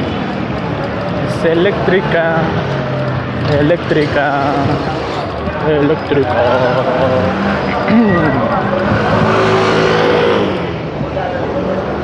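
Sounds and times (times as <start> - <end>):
vehicle engine: 0.0 - 12.0.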